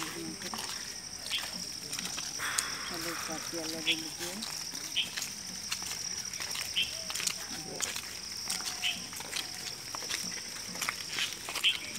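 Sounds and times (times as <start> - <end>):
faint distant voices: 0.0 - 11.9
footsteps on sandy path: 0.0 - 11.9.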